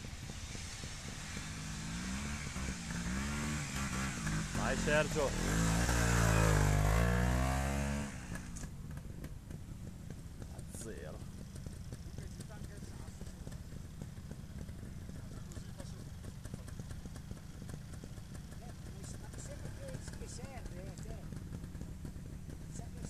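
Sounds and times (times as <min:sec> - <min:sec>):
low steady rumble: 0:00.0 - 0:23.0
motorcycle engine revving: 0:00.0 - 0:23.0.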